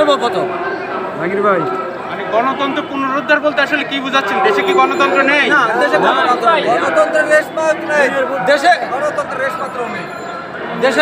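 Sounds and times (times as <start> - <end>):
men talking loudly in a crowd: 0.0 - 11.0.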